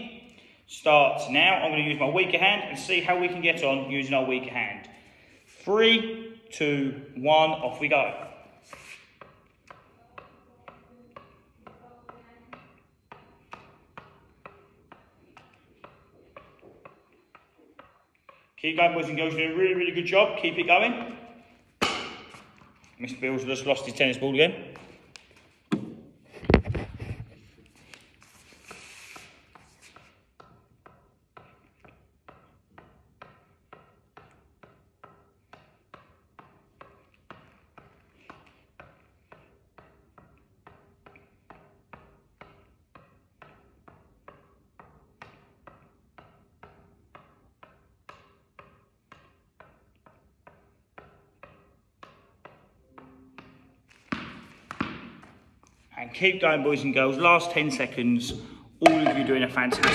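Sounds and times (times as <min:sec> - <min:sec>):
tennis ball tapped on racket: 0:08.1 - 0:18.4, 0:24.7 - 0:26.7, 0:28.7 - 0:55.8.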